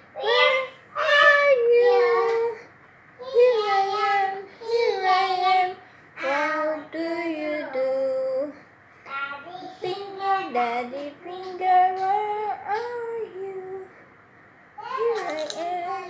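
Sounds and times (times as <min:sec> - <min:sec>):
child singing unaccompanied: 0:00.2 - 0:14.0, 0:14.8 - 0:16.0.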